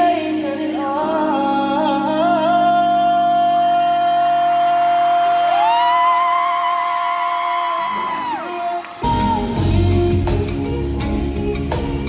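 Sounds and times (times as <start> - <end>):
live pop band with drums: 0.0 - 12.0.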